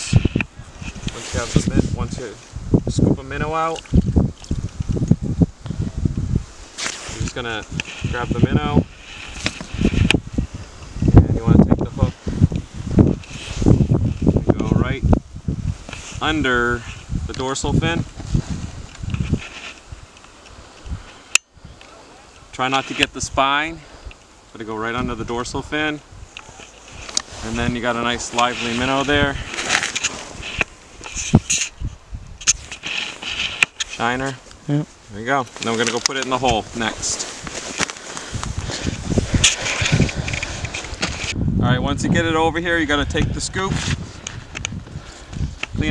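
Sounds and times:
faint rustling: 0:00.0 - 0:02.6, 0:06.4 - 0:14.8, 0:15.7 - 0:23.2, 0:23.8 - 0:41.4
wind buffeting microphone: 0:00.0 - 0:45.9.

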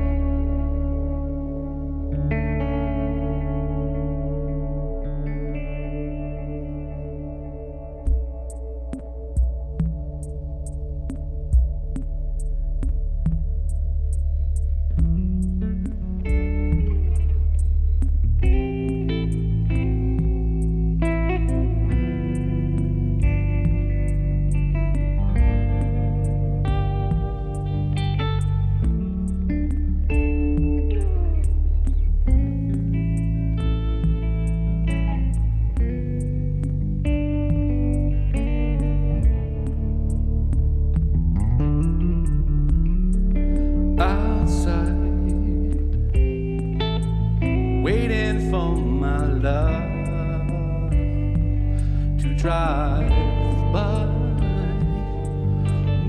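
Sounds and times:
electric guitar melody: 0:00.0 - 0:56.0
low bass notes: 0:00.0 - 0:56.0
faint ticking beat: 0:05.0 - 0:56.0.

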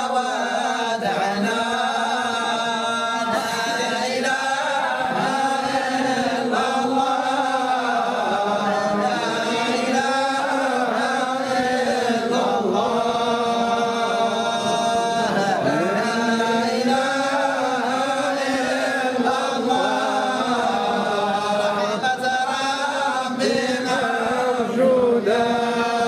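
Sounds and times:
men chanting together: 0:00.0 - 0:26.0.

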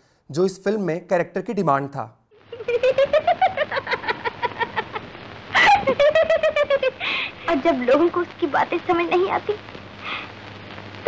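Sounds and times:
woman's rapid trilling laugh: 0:02.5 - 0:07.2.

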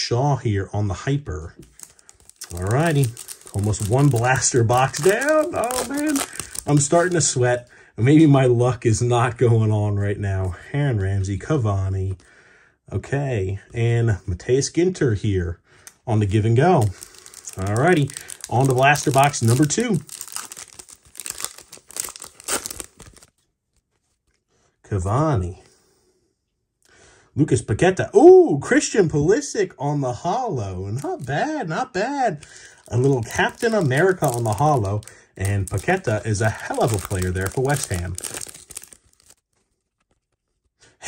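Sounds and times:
foil wrapper tearing and crinkling: 0:01.6 - 0:07.3, 0:16.8 - 0:23.3, 0:32.7 - 0:40.2.

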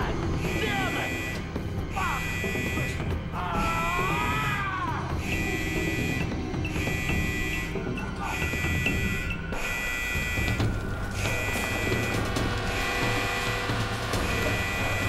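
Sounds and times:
alarm buzzer pulses: 0:00.0 - 0:04.0, 0:05.0 - 0:15.0
background music: 0:00.0 - 0:15.0.

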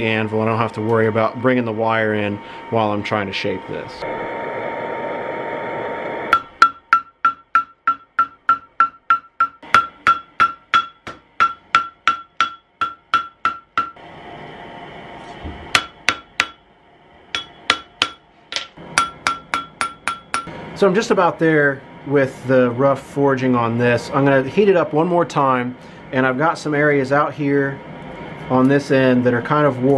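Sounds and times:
forge hissing: 0:01.0 - 0:06.5
hammer ringing on anvil: 0:06.3 - 0:14.0, 0:15.8 - 0:16.6, 0:17.4 - 0:20.5.

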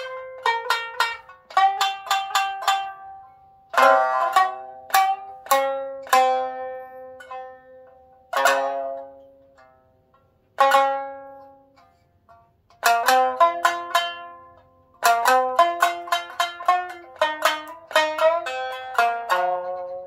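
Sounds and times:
shamisen plucked notes: 0:00.0 - 0:20.0.

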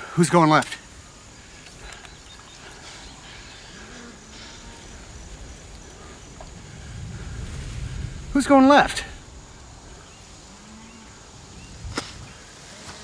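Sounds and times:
insect chirping: 0:00.0 - 0:13.0
low wind rumble: 0:00.8 - 0:12.7.

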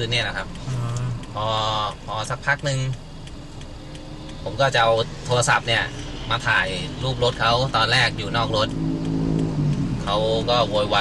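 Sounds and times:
man speaking: 0:00.0 - 0:03.0, 0:04.4 - 0:08.8, 0:10.0 - 0:11.0
low hum inside a car: 0:00.0 - 0:11.0.

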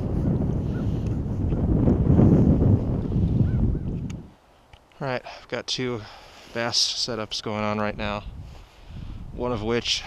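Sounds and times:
wind buffeting microphone: 0:00.0 - 0:04.5, 0:07.1 - 0:10.0.

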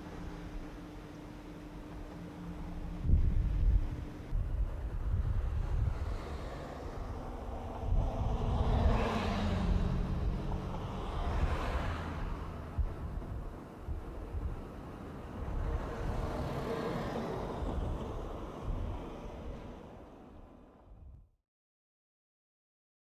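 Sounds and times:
faint steady hum: 0:00.0 - 0:08.6
wind buffeting microphone: 0:02.7 - 0:21.3.

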